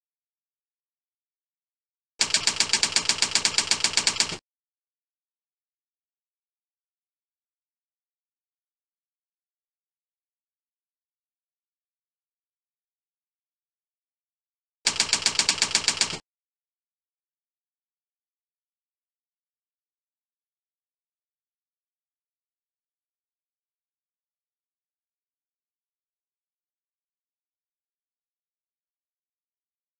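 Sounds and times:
keystroke clicks: 0:02.2 - 0:04.4, 0:14.9 - 0:16.2
typewriter typing: 0:02.2 - 0:04.4, 0:14.9 - 0:16.2.

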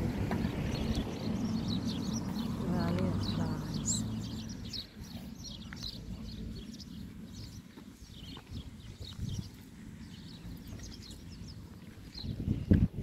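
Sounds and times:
small birds chirping: 0:00.0 - 0:13.0
wind buffeting microphone: 0:00.0 - 0:13.0.

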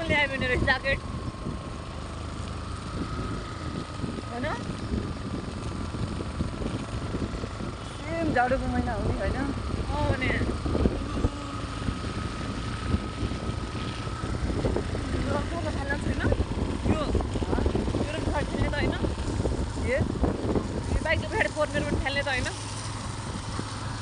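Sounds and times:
motorcycle engine running: 0:00.0 - 0:24.0
thin steady whine: 0:00.0 - 0:24.0
wind noise on microphone: 0:00.0 - 0:24.0
voices talking: 0:14.6 - 0:22.7.

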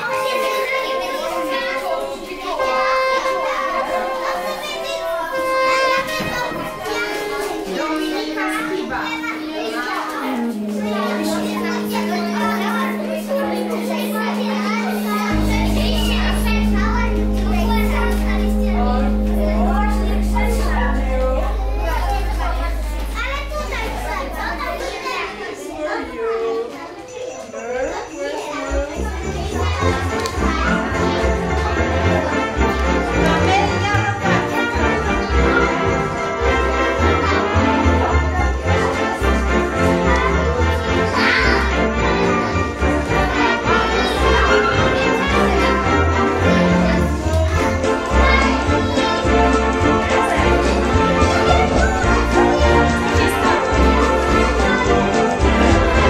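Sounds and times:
background music with held notes: 0:00.0 - 0:26.0, 0:28.7 - 0:56.0
children chattering and calling out: 0:00.0 - 0:56.0.

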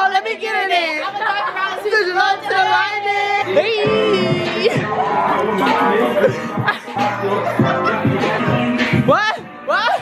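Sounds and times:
women chattering: 0:00.0 - 0:07.6.

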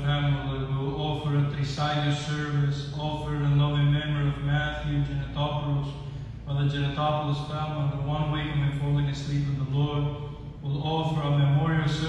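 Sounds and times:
man chanting a hymn: 0:00.0 - 0:12.0.

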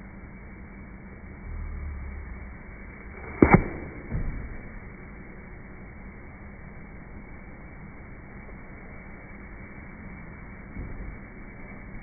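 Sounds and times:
low steady background: 0:00.0 - 0:12.0.

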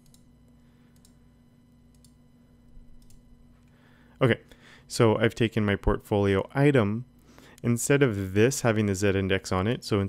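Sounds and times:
computer mouse clicks: 0:00.0 - 0:00.3, 0:01.0 - 0:01.2, 0:01.9 - 0:02.2, 0:03.0 - 0:03.7
low steady hum: 0:00.0 - 0:10.0.

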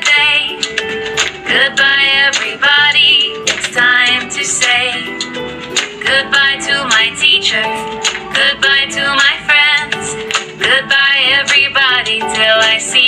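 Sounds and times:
children's song vocal: 0:00.0 - 0:00.7, 0:01.5 - 0:05.2, 0:06.0 - 0:13.0
instrumental backing music: 0:00.0 - 0:13.0.

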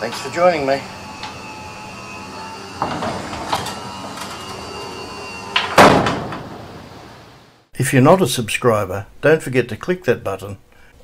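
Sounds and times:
roller garage door moving: 0:00.0 - 0:07.4
loud ringing bang: 0:05.6 - 0:06.9.

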